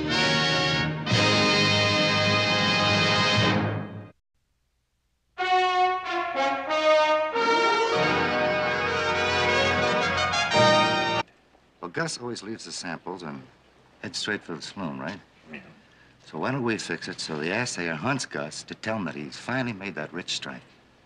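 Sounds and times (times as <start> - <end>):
brass music with held notes: 0.0 - 4.1, 5.4 - 11.3
brass-led orchestral music: 0.0 - 4.1, 5.4 - 11.2.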